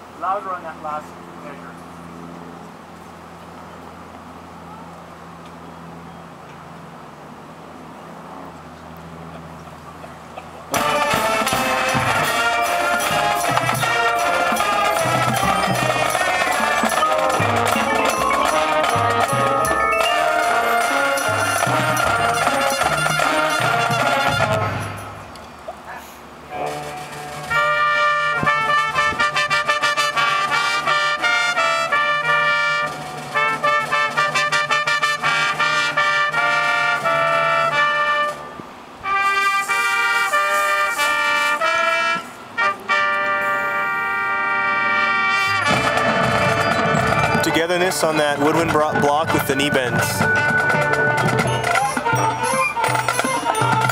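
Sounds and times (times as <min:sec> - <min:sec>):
marching band playing: 0:10.6 - 0:25.4, 0:26.3 - 0:53.9.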